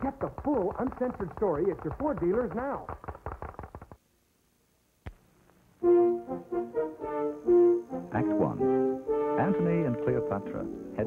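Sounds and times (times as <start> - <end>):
brass-led music: 5.8 - 11.0.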